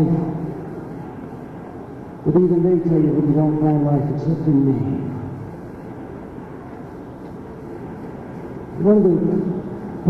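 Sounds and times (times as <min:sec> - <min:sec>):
hall background noise: 0:00.0 - 0:10.0
man talking: 0:02.3 - 0:05.3, 0:08.8 - 0:09.6.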